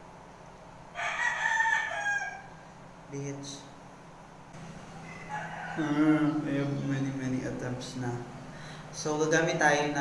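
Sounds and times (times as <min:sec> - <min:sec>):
rooster crowing: 0:00.9 - 0:02.6, 0:04.8 - 0:07.0.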